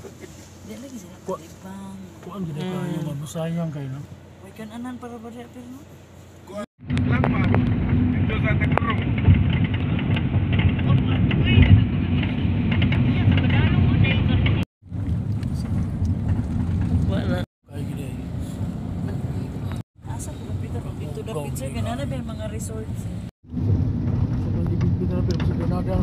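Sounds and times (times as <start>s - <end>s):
van engine and road rumble: 0.0s - 26.0s.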